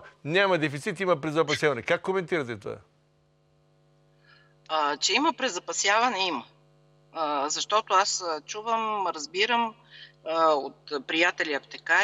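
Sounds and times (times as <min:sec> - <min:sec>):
faint mains hum: 0:00.0 - 0:12.0
woman speaking: 0:04.7 - 0:06.5, 0:07.2 - 0:12.0.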